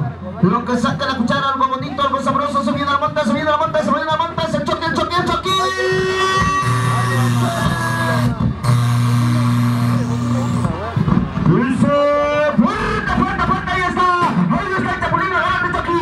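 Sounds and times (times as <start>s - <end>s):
voice: 0.0s - 8.5s, 9.3s - 16.0s
music with long held low notes: 4.2s - 13.6s.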